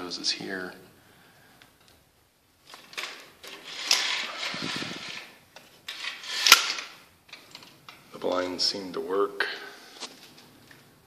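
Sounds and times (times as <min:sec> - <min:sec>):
window blind slats rattling: 0:02.6 - 0:08.0.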